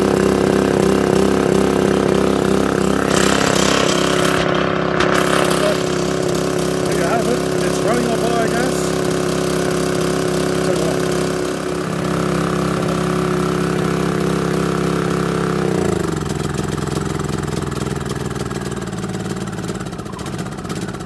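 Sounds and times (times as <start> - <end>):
generator engine running: 0.0 - 21.0.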